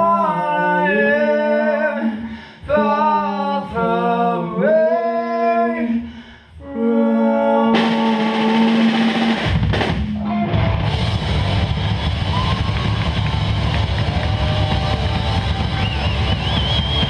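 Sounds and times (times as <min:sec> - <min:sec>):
rock band playing: 0:07.7 - 0:17.0.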